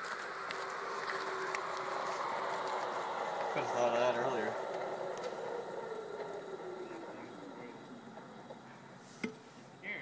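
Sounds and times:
saw blade whirring down: 0.0 - 8.9.

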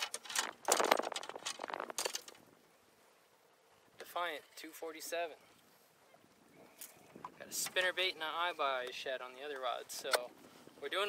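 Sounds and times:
fishing gear clicks and rustles: 0.0 - 2.5, 6.6 - 7.9.

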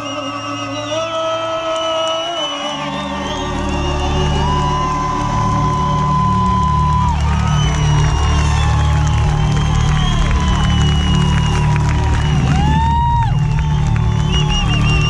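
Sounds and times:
audience cheering: 0.0 - 15.0.

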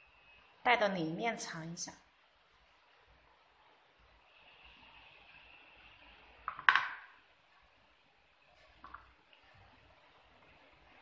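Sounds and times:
crochet hook clattering on table: 6.5 - 7.1.

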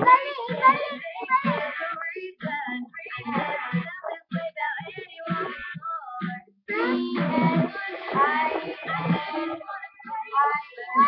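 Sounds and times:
girl singing unaccompanied: 0.0 - 11.0.

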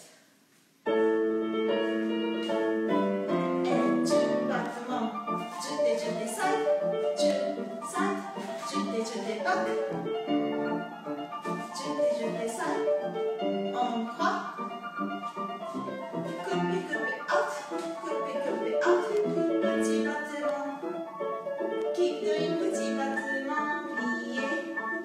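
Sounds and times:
piano music: 0.8 - 25.0.

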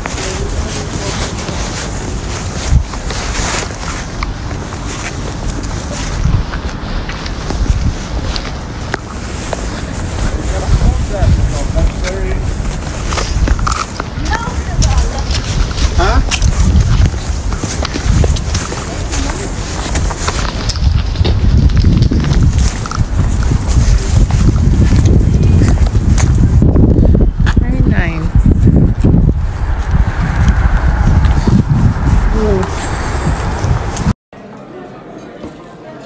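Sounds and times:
faint voices: 0.0 - 7.6, 9.7 - 21.6
wind buffeting microphone: 0.0 - 34.2.

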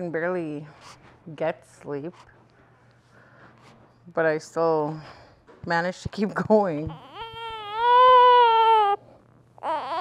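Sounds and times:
infant crying: 6.9 - 9.0, 9.6 - 10.0.

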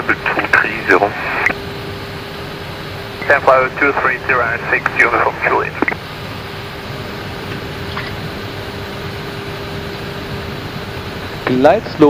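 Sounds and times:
radio voice over headset: 0.0 - 1.5, 3.2 - 6.0
cockpit air noise: 0.0 - 11.4.

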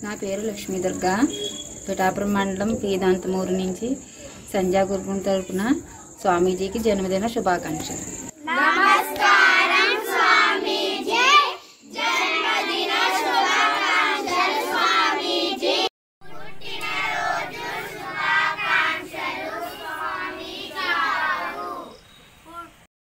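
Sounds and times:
children reciting in unison: 8.4 - 22.9.

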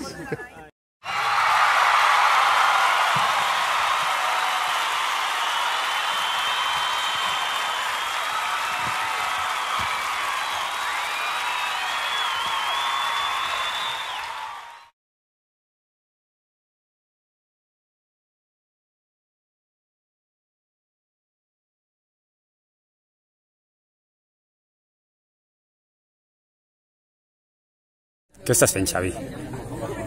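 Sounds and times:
crowd clapping and cheering: 1.0 - 14.9
whistles: 2.9 - 14.9.

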